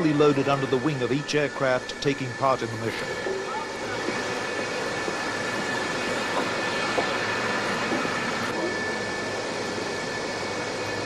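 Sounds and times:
aircraft turbine roar with whine: 0.0 - 11.0.

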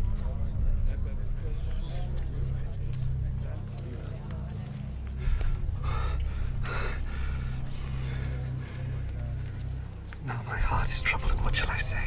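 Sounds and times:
low steady drone: 0.0 - 12.0.

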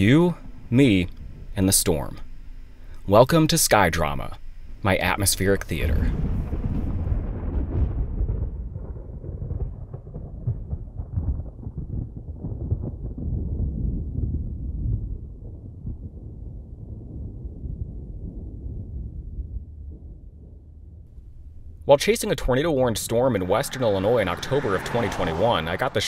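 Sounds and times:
deep rumble of thunder: 5.8 - 21.9.

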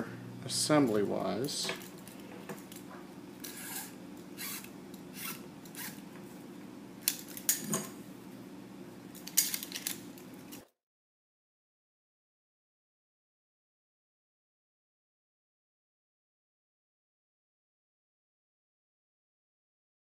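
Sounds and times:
low steady hum: 0.0 - 10.6
cord scraping through holes: 3.4 - 6.0.

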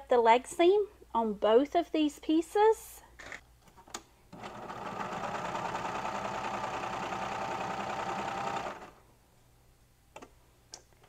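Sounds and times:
serger sewing machine running: 4.4 - 9.0.

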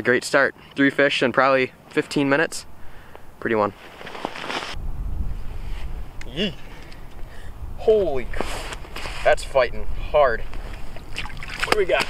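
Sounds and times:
wind buffeting microphone: 4.7 - 12.0.

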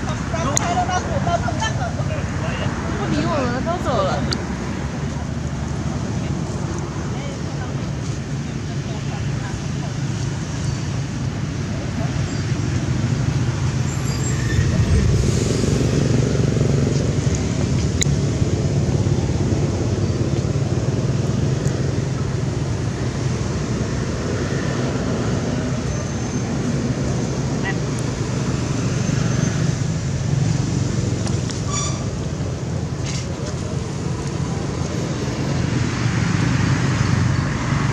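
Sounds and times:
low outdoor rumble: 3.9 - 28.8
indistinct voices: 11.2 - 17.8.

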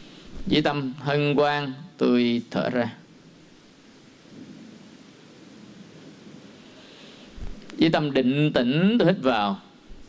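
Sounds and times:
soft even hiss: 0.0 - 10.0.

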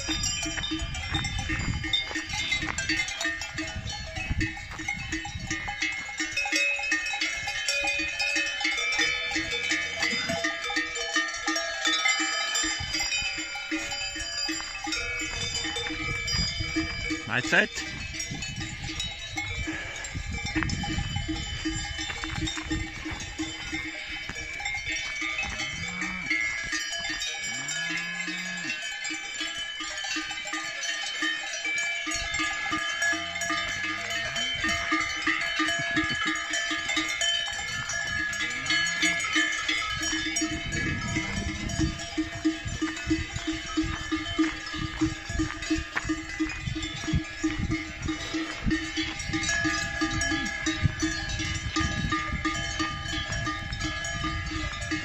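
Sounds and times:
cowbells clanking: 0.0 - 55.0
cattle mooing: 25.6 - 26.6, 27.4 - 28.8, 38.3 - 39.3.

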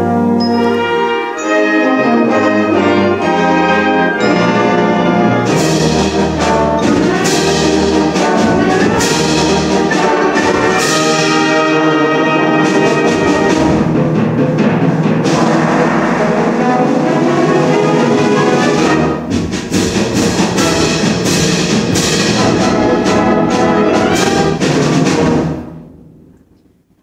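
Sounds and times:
concert band brass: 0.0 - 25.9
timpani hits: 0.0 - 26.4.

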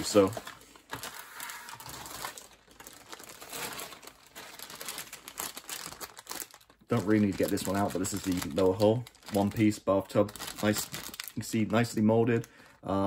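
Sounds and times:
plastic bags crinkling: 0.0 - 12.5.

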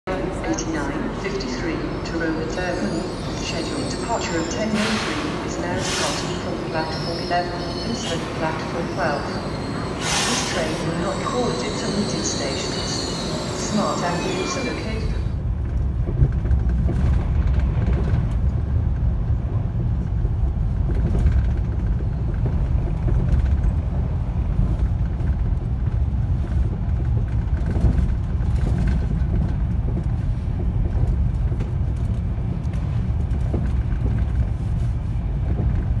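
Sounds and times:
train cabin rumble: 0.1 - 36.0.

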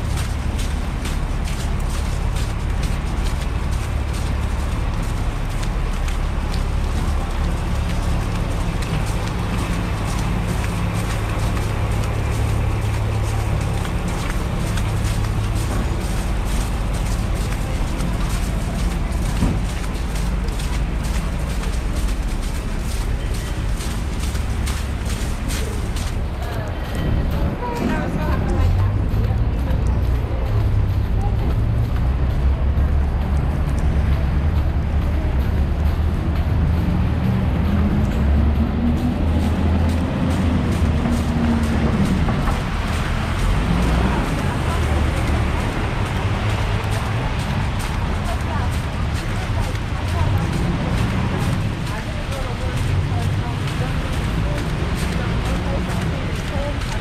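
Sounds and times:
low traffic rumble: 0.0 - 57.0
passers-by talking: 0.0 - 57.0
vehicle engine passing by: 0.0 - 57.0.

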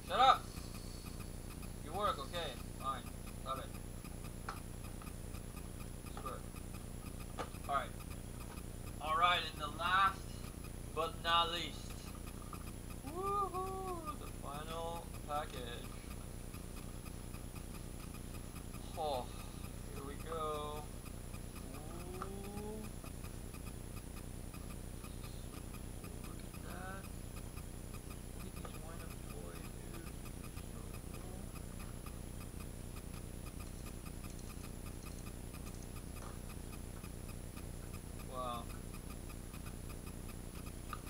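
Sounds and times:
steady low hum: 0.0 - 41.0
faint voices: 13.0 - 16.0.

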